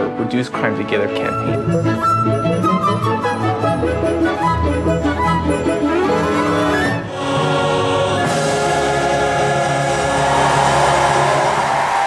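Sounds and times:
orchestra and choir sustained chord: 6.1 - 12.0.

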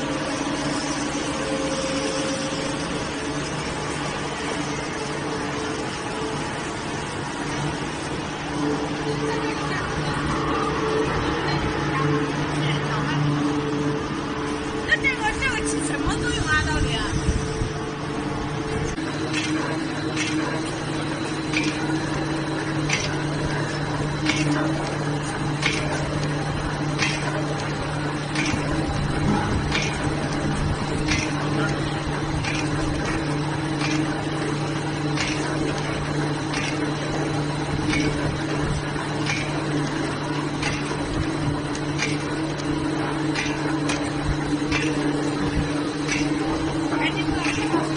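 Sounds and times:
machinery humming: 0.0 - 47.9
people talking: 9.0 - 13.6, 14.8 - 17.4, 44.8 - 47.9.

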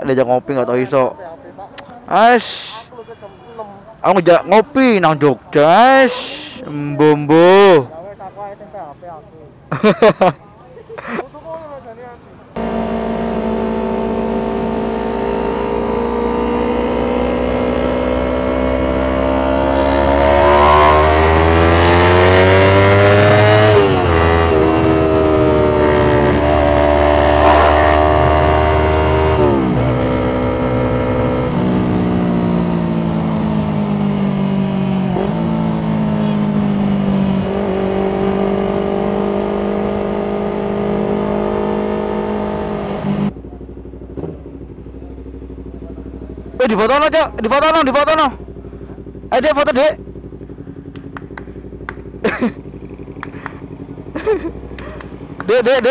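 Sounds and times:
motorcycle engine accelerating: 12.6 - 55.9.

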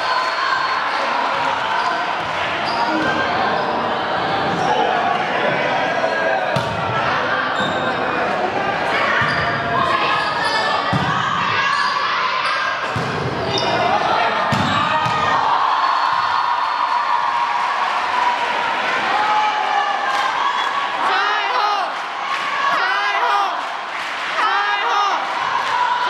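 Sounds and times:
players and spectators shouting: 0.0 - 26.0
volleyball hits echoing: 6.5 - 7.1, 10.8 - 11.6, 12.8 - 15.4.

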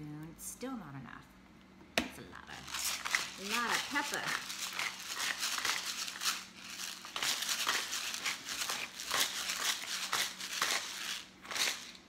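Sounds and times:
pepper grinder crunching: 2.6 - 12.0.

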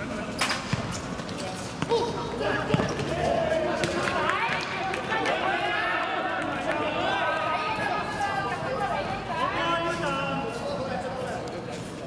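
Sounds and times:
players shouting: 1.8 - 10.1.

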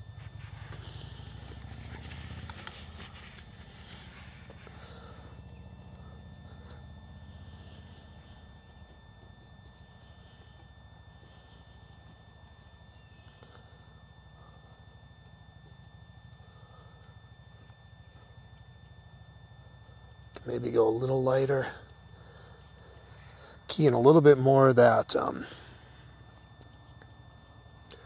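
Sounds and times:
low outdoor rumble: 0.0 - 28.0
paintbrush scuffs on palette: 0.2 - 4.7.

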